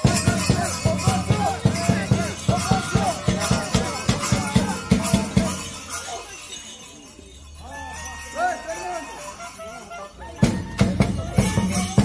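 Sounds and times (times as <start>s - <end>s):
loud drum beats: 0.0s - 5.9s, 10.4s - 12.0s
faint voices: 0.0s - 12.0s
jingling and clinking: 0.0s - 12.0s.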